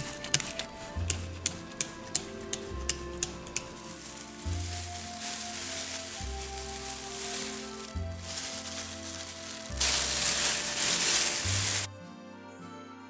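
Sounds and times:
background music with bass notes: 0.0s - 13.0s
spray bottle spritzing: 3.3s - 11.9s.

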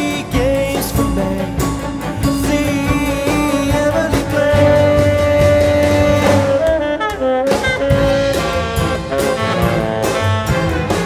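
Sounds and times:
chamber orchestra with saxophone: 0.0s - 11.0s.

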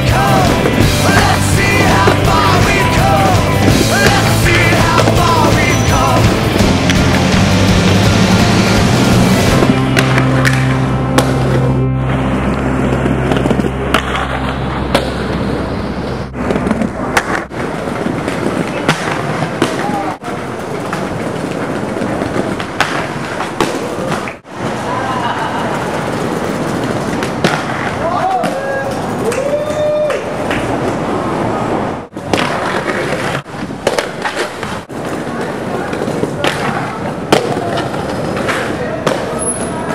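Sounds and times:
skate wheels grinding on stone: 0.0s - 10.7s, 16.4s - 29.2s, 32.2s - 39.9s
skateboard landing clacks: 20.8s - 24.4s.

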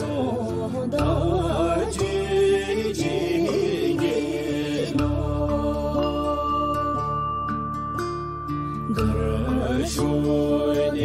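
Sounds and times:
person singing a prayer: 0.0s - 7.0s, 8.9s - 11.0s
sustained musical backing: 0.0s - 11.0s.

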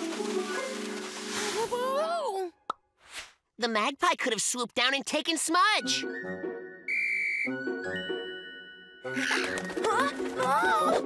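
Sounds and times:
light cartoon background music: 0.0s - 2.2s, 5.0s - 11.0s
toy whistle blast: 6.9s - 7.6s.

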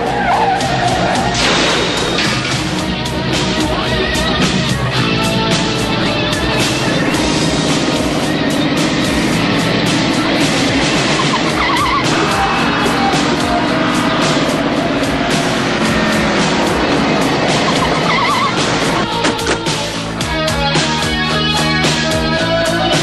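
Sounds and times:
dramatic cartoon music: 0.0s - 23.0s.

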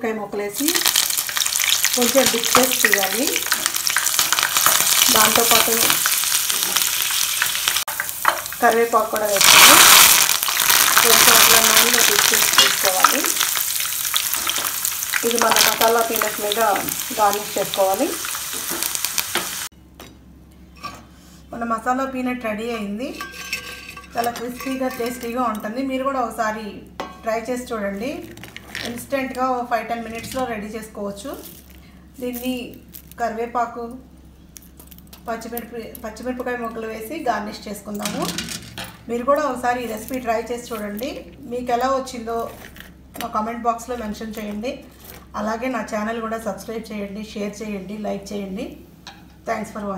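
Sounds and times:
hot oil sizzling: 0.6s - 19.7s.

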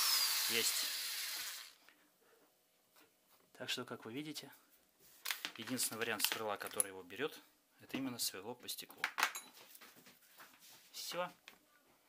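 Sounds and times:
power drill on glass: 0.0s - 1.8s.

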